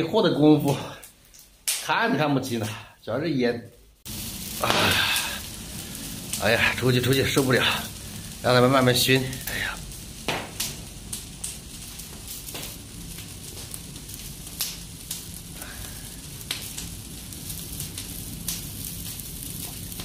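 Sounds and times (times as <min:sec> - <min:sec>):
fire crackling and hissing: 0:00.0 - 0:03.0, 0:04.0 - 0:20.0
sharp pops of burning branches: 0:00.6 - 0:02.0, 0:04.0 - 0:20.0.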